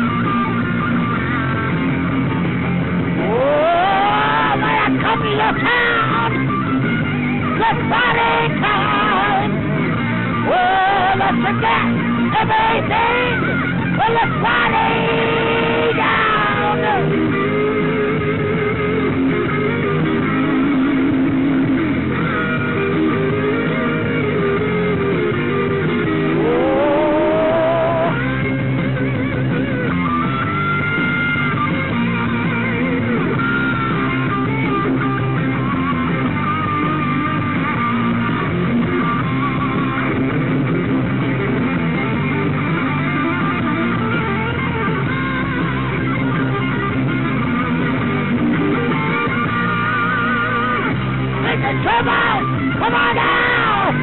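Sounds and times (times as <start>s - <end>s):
guitar bending notes: 0.0s - 54.0s
live rock band playing: 0.0s - 54.0s.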